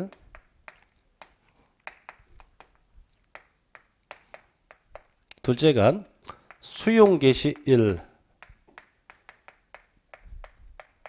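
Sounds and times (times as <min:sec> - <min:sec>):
chalk tapping on chalkboard: 0:00.0 - 0:11.0.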